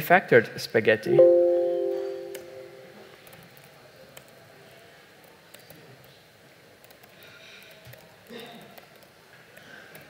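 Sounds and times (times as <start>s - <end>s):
ringing pitched tone: 1.1s - 2.9s
laptop keys typing: 6.8s - 8.2s.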